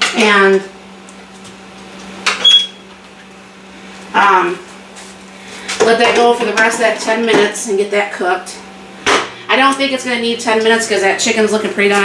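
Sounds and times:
cooker humming: 0:00.0 - 0:12.0
high beep: 0:02.4 - 0:02.8.

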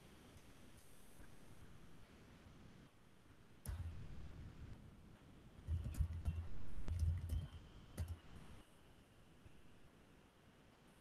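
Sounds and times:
keyboard typing clicks: 0:05.7 - 0:08.2.

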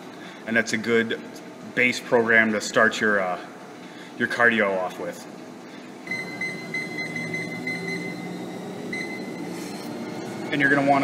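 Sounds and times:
treadmill console beeping: 0:06.0 - 0:11.0.

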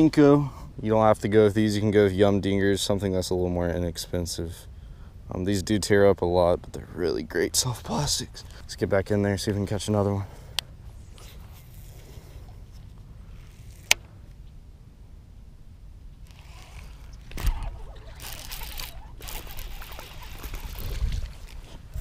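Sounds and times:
rod and reel handling noise: 0:10.5 - 0:14.5, 0:16.1 - 0:22.0
wind rumbling on microphone: 0:16.1 - 0:22.0.

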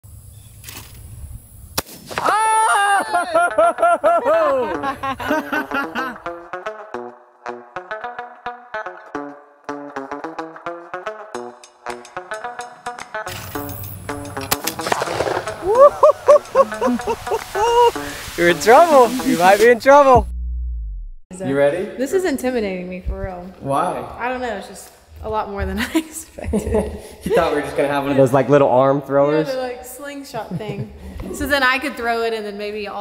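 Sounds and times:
shotgun shot: 0:01.8 - 0:02.2, 0:14.5 - 0:15.6
loud laughter: 0:02.2 - 0:06.2, 0:15.6 - 0:18.0.

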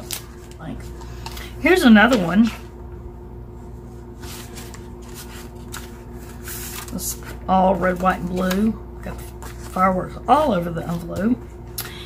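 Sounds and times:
faint steady hum: 0:00.0 - 0:12.0
paper rustling and scraping: 0:04.2 - 0:10.0.

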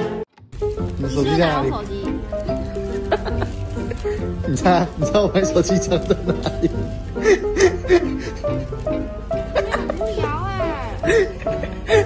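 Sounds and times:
background music: 0:00.0 - 0:12.0
man laughing hard: 0:03.1 - 0:04.0, 0:06.0 - 0:08.5, 0:11.0 - 0:12.0.

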